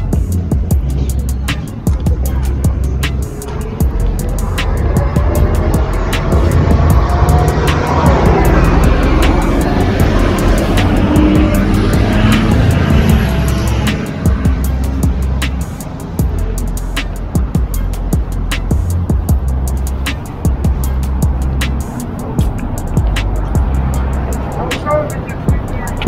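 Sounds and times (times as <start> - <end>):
background music with steady beat: 0.0 - 26.0
bus driving past: 0.0 - 26.0.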